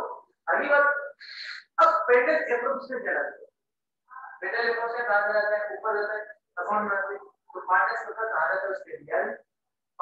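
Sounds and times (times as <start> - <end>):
man lecturing: 0.0 - 9.6.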